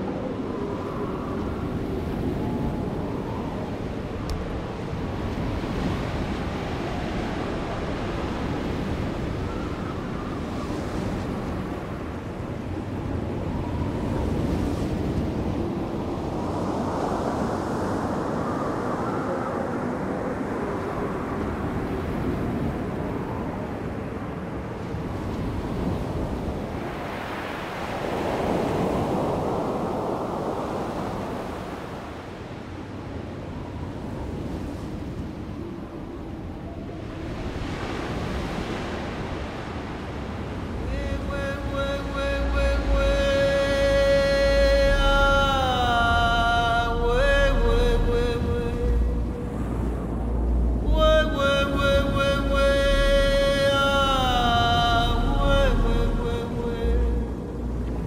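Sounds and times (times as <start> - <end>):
wind: 0.0 - 58.0
surf washing onto beach: 1.0 - 35.8.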